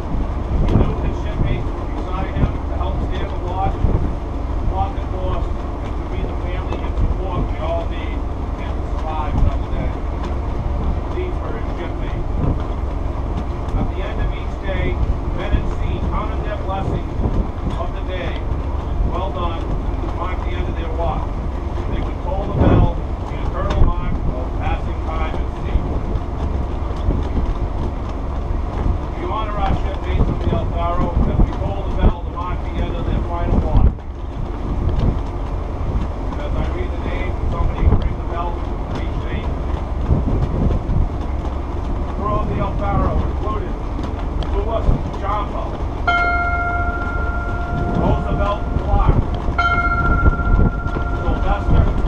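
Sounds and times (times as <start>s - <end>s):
wind rumble on microphone: 0.0s - 52.0s
man speaking indistinctly: 0.6s - 4.0s, 4.7s - 10.1s, 13.8s - 18.5s, 19.1s - 25.9s, 42.2s - 43.8s, 47.8s - 49.3s, 51.1s - 52.0s.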